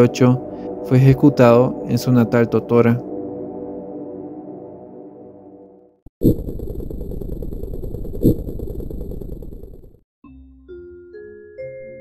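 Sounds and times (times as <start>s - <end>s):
fast rattling rumble: 6.2s - 10.0s.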